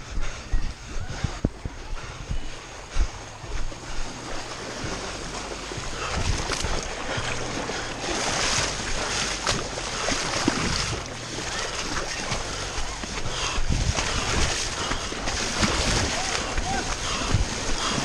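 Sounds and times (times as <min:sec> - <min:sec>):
running feet splashing in water: 0:00.0 - 0:18.0.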